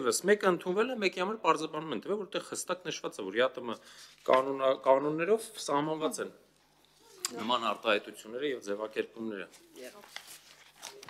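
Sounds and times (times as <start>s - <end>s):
paper rustling and crinkling: 4.0s - 4.6s, 9.4s - 11.0s.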